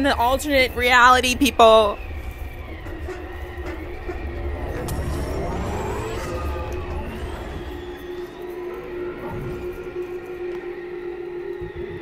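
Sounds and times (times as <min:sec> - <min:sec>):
low rumbling drone: 0:00.0 - 0:12.0
rising pitch sound: 0:02.5 - 0:11.3.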